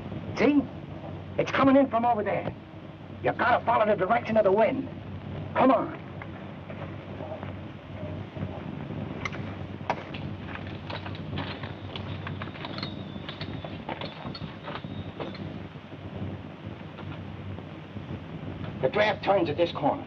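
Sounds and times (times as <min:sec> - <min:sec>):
film soundtrack hiss: 0:00.0 - 0:20.0.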